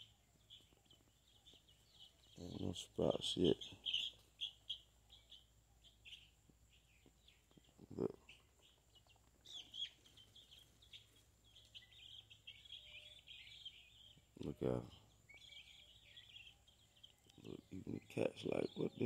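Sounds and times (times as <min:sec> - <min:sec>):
chicks cheeping: 0:00.0 - 0:19.0.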